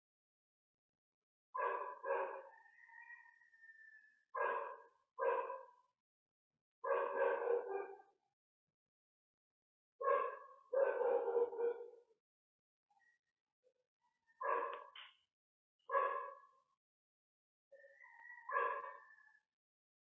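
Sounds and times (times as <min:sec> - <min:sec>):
dog barking: 0:01.6 - 0:02.8, 0:04.4 - 0:05.8, 0:06.8 - 0:08.1, 0:10.0 - 0:12.1, 0:14.3 - 0:15.0, 0:15.9 - 0:16.5, 0:18.0 - 0:19.3.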